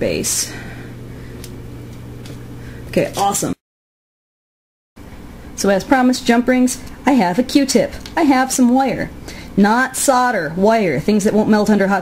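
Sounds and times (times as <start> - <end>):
low background hum: 0.0 - 3.6, 5.0 - 12.0.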